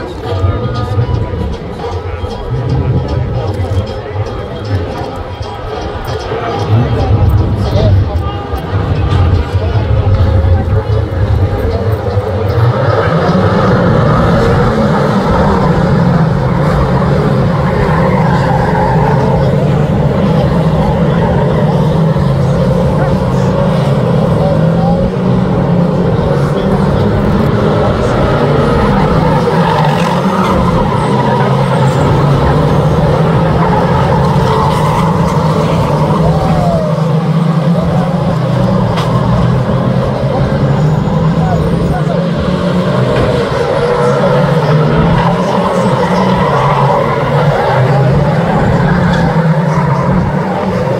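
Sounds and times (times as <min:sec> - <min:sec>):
race car engines revving: 0:00.0 - 0:50.9.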